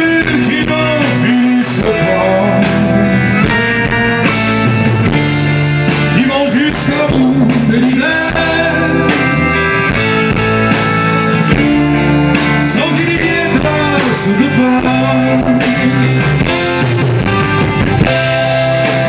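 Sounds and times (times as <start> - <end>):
electric guitar: 0.0 - 19.0
live rock band playing: 0.0 - 19.0.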